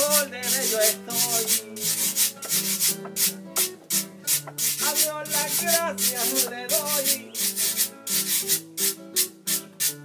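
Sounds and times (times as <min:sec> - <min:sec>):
person singing: 0:00.0 - 0:02.3, 0:04.6 - 0:07.9
bananas being grated: 0:00.0 - 0:10.0
strummed string instrument: 0:00.0 - 0:10.0.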